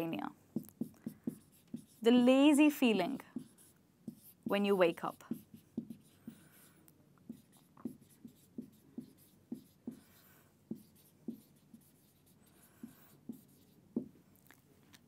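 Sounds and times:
marker squeaking on whiteboard: 0.6s - 2.2s, 3.4s - 14.1s.

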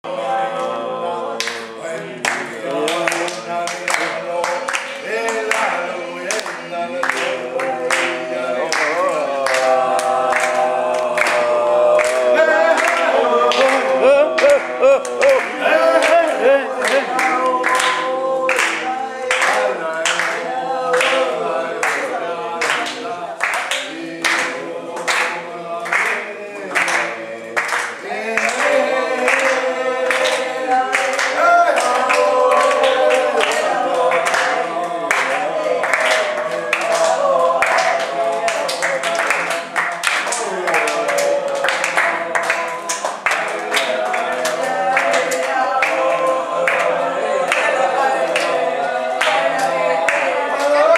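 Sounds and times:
group singing unaccompanied: 0.0s - 50.9s
hand claps: 1.4s - 48.6s, 49.2s - 50.9s.

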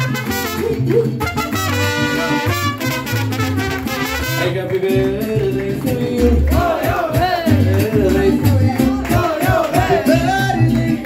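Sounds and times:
trumpets playing melody: 0.0s - 4.8s
mariachi band playing: 0.0s - 11.0s
person singing: 4.2s - 11.0s.

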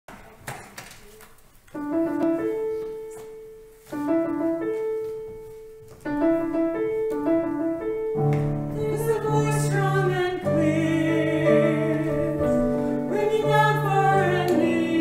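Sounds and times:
piano phrase: 1.8s - 15.0s.

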